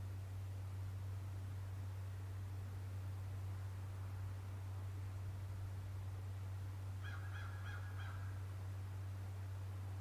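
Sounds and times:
steady low hum: 0.0 - 10.0
distant bird calling: 7.0 - 8.5.

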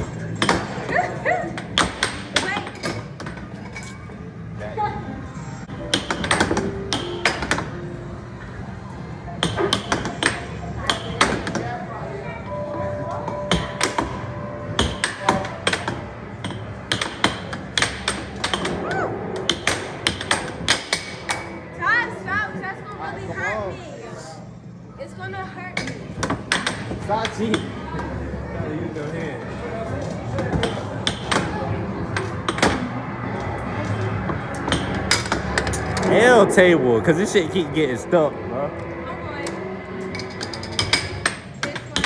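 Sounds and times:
background chatter: 0.0 - 5.9, 7.6 - 42.0
air hockey puck clacking: 5.8 - 7.8, 9.4 - 11.7, 14.8 - 18.8, 19.4 - 21.5, 30.5 - 32.9, 40.2 - 42.0.

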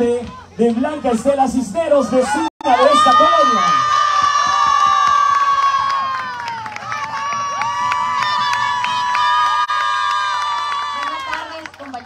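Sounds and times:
crowd cheering: 1.9 - 12.0.

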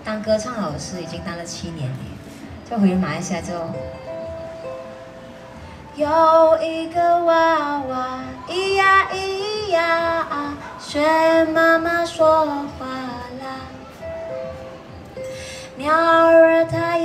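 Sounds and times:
woman singing: 5.9 - 14.1, 15.4 - 17.0.

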